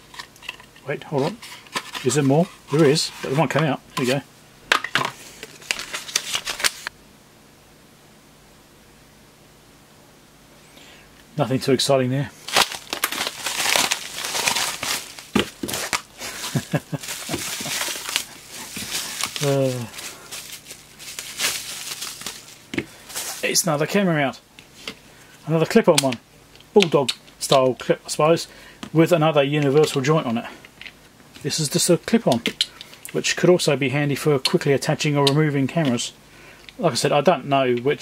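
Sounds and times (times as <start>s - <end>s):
bubble wrap rustling: 1.1s - 4.2s, 5.1s - 6.9s, 12.3s - 24.0s
paper crackling: 5.2s - 6.9s, 12.4s - 23.8s.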